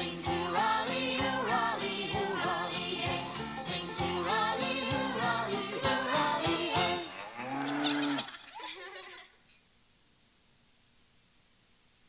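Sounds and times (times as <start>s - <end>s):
faint tape hiss: 0.0s - 12.0s
higher-pitched cow call: 7.0s - 8.4s
cow mooing: 7.1s - 8.3s.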